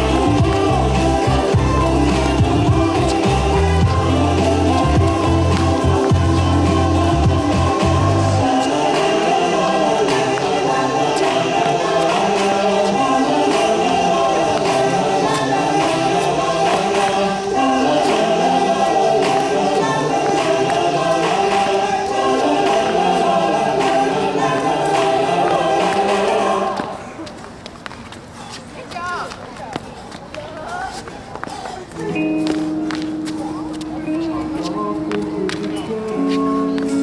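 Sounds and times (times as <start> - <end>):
choir singing in harmony: 0.0 - 27.2.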